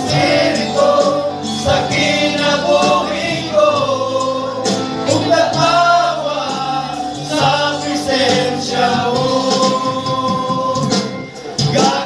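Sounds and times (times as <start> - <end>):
men singing a church song: 0.0 - 12.0.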